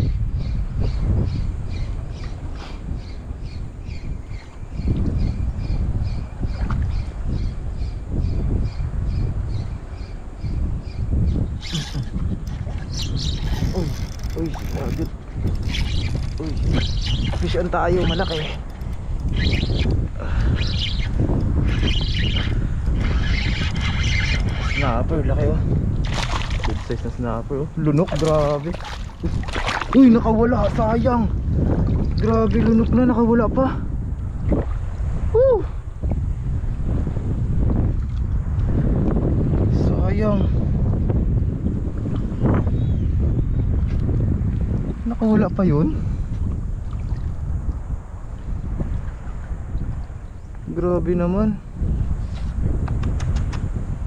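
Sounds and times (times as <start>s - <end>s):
wind rumble on microphone: 0.0s - 54.0s
fishing reel buzzing: 11.6s - 25.1s.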